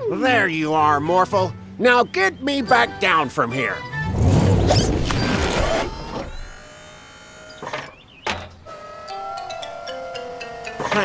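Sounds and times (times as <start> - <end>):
background music: 0.0 - 4.9
motor whirring: 4.6 - 11.0.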